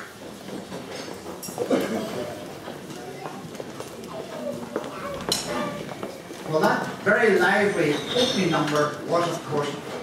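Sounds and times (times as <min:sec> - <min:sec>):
indistinct chatter: 0:00.0 - 0:10.0
footsteps on wooden floor: 0:02.6 - 0:06.5.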